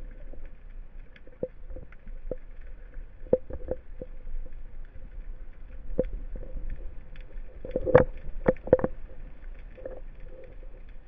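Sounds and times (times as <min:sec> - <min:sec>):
low underwater rumble: 0:00.0 - 0:11.0.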